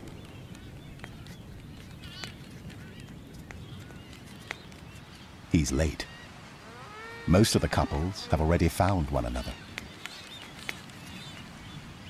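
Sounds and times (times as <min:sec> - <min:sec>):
faint high bird calls: 0:00.1 - 0:12.0.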